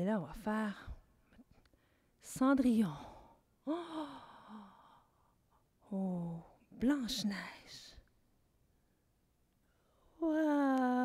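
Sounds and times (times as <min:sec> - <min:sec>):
woman sighing: 0:03.6 - 0:05.1.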